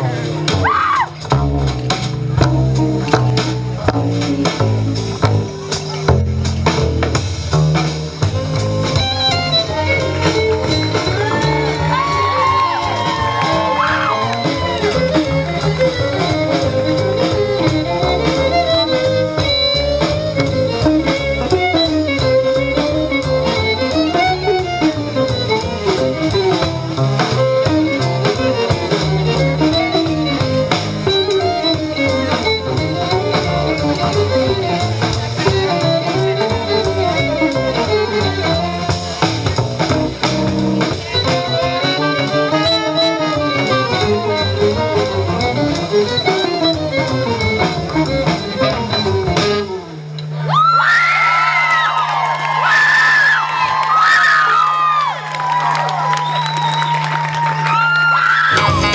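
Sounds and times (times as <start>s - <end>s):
archtop guitar: 0.0s - 50.5s, 58.5s - 58.9s
double bass: 0.0s - 50.8s, 54.6s - 58.9s
drum kit: 0.0s - 58.9s
violin melody: 8.2s - 50.3s.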